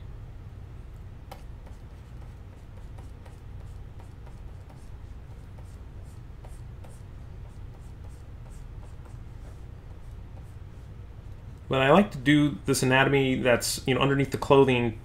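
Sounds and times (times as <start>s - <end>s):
steady low hum: 0.0s - 15.0s
stylus scratching on tablet: 1.3s - 11.5s.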